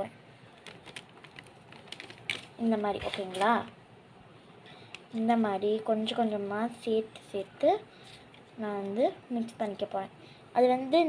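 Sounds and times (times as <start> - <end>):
plastic packet rustling: 0.5 - 3.7
woman speaking: 2.6 - 3.7, 5.1 - 7.9, 8.6 - 11.0.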